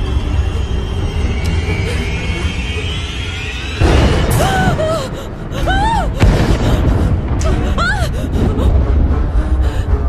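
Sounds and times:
tense film score: 0:00.0 - 0:10.0.

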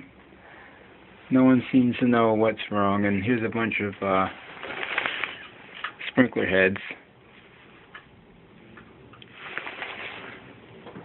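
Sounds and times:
handling rustle: 0:04.2 - 0:06.0, 0:09.2 - 0:11.0.

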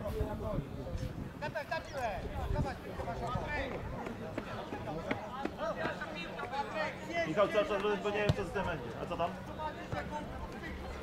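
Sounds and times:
men talking and calling: 0:00.0 - 0:11.0.

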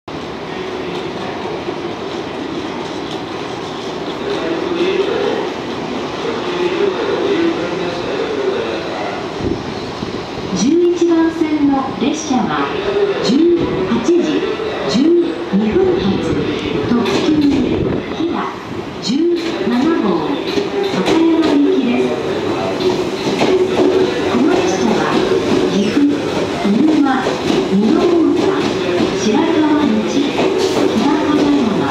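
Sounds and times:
train approaching: 0:00.1 - 0:31.9
train rumble and hiss: 0:00.1 - 0:31.9
voices: 0:00.4 - 0:31.9.

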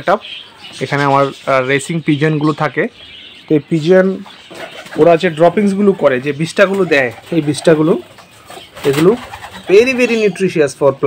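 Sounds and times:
pigeons cooing: 0:00.0 - 0:10.8.

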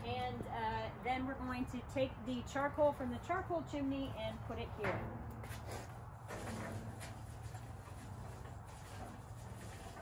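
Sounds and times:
charcoal rattling and scraping: 0:06.3 - 0:10.0.

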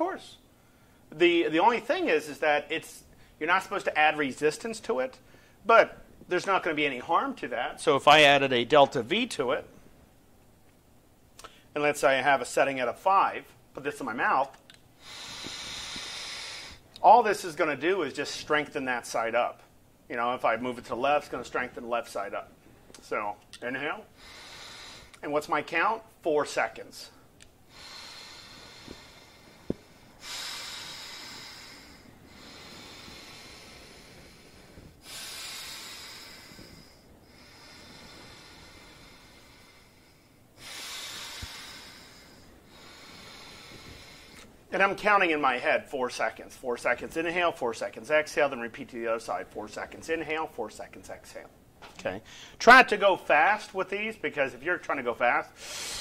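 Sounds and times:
breath through breathing trainer: 0:00.4 - 0:01.1, 0:02.1 - 0:06.1, 0:15.0 - 0:19.7, 0:24.0 - 0:46.6, 0:52.2 - 0:52.6, 0:54.9 - 0:56.0.

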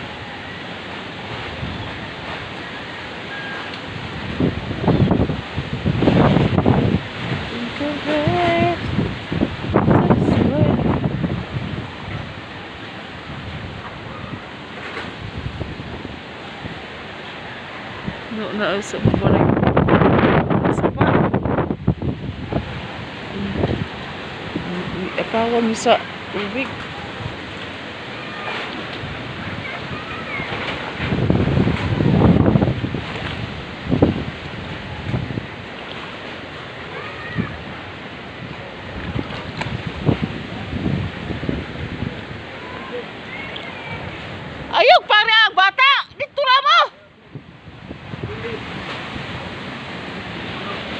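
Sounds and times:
wind buffeting microphone: 0:00.0 - 0:50.9.

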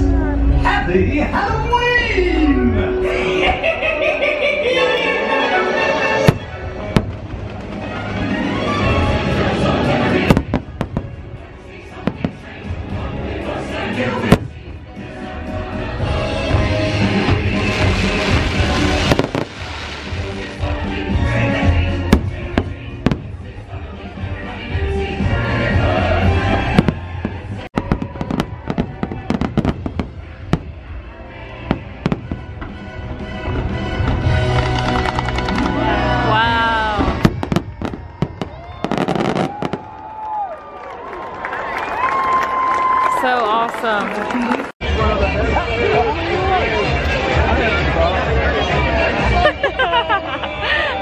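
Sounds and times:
show music over outdoor speakers: 0:04.9 - 0:39.7, 0:44.8 - 0:51.0
firework bangs: 0:06.2 - 0:12.8, 0:16.5 - 0:21.3, 0:22.0 - 0:23.5, 0:26.4 - 0:31.0, 0:31.6 - 0:35.7, 0:36.9 - 0:40.3.

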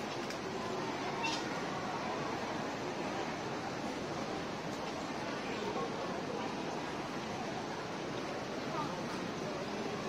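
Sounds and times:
airport terminal crowd murmur: 0:00.0 - 0:10.0.

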